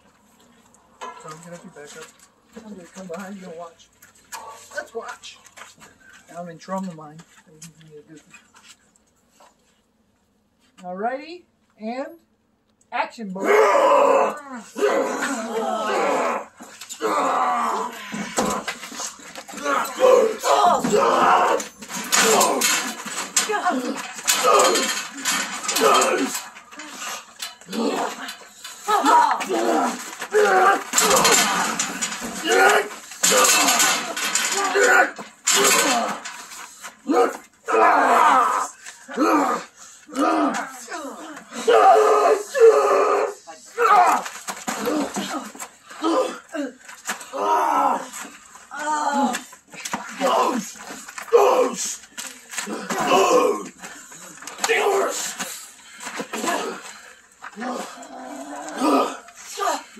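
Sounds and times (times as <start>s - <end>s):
people shouting and yelling: 13.4s - 59.9s.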